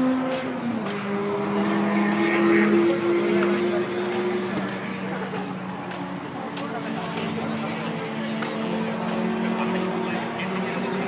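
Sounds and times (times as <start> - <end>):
people talking: 0.0 - 11.0
steady engine hum: 0.0 - 11.0.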